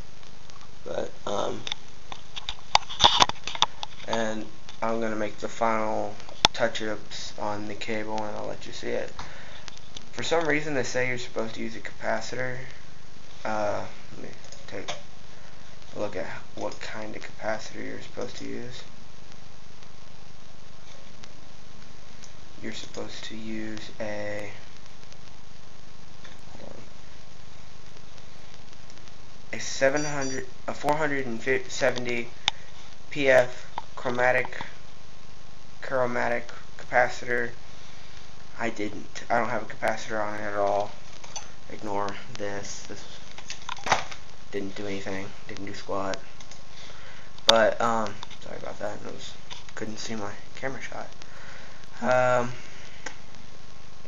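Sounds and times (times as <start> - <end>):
steady hiss: 0.0 - 54.0.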